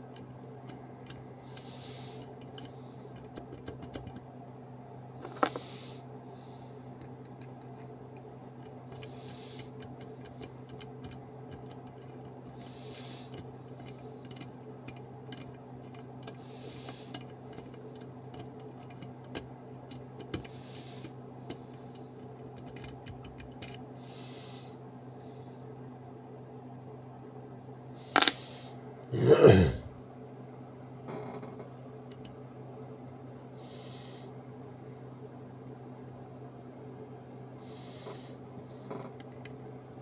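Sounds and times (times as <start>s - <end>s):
steady low hum: 0.0s - 40.0s.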